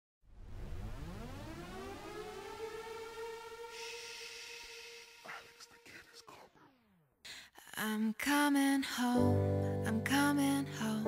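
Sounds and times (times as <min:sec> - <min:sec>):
synthesized tone gliding upward: 0:00.3 - 0:05.8.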